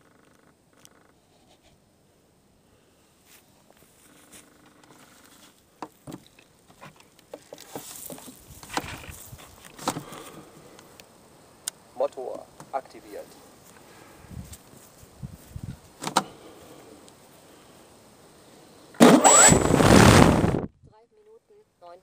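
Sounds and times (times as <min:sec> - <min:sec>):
handling clicks knocks and rustles: 0:05.8 - 0:10.1.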